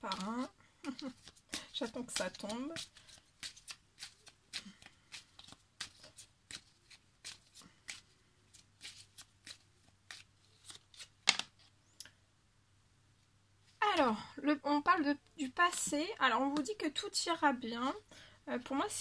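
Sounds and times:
cards being shuffled by hand: 0.0 - 11.8, 15.4 - 16.8.

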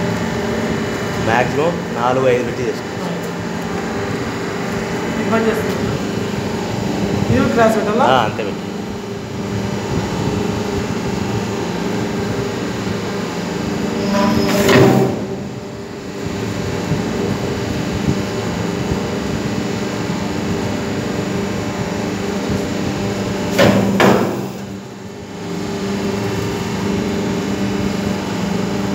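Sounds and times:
machine motor and pump humming: 0.0 - 28.9
machine press stroke surging: 13.4 - 16.2.

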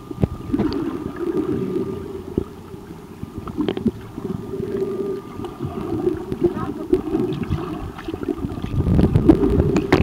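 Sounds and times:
muffled underwater water wash: 0.0 - 10.0.

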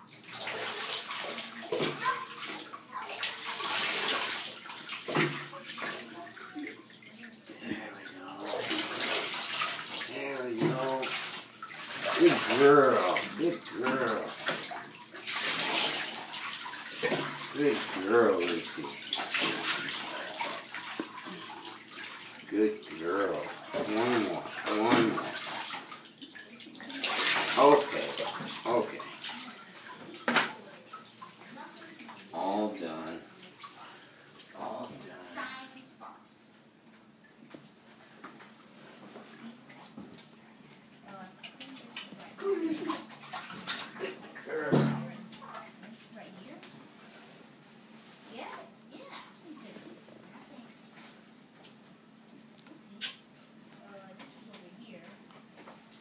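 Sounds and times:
water splashing into bath: 0.0 - 35.8, 37.1 - 47.4, 52.5 - 54.4.

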